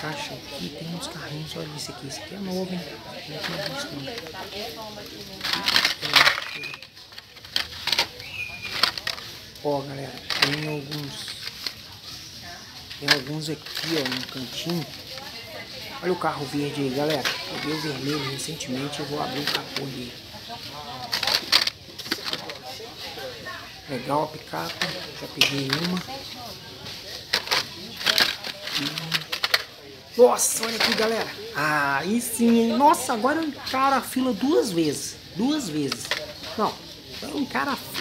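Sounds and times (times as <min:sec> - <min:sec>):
plastic packages rustling and clattering: 0:00.0 - 0:38.0.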